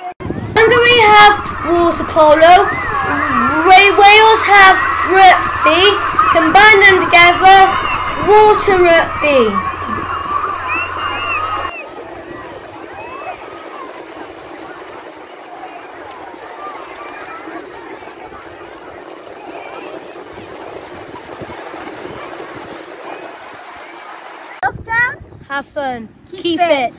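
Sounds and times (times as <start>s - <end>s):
distant children's voices: 0.3s - 25.1s
seawater splashing: 0.6s - 24.6s
small waves washing: 0.6s - 24.6s.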